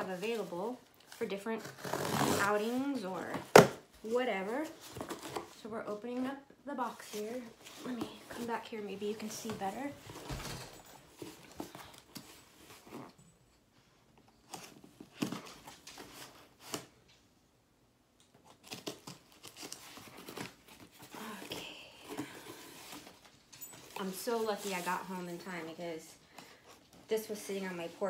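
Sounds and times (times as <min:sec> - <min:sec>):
packing tape tearing: 0:18.4 - 0:21.1.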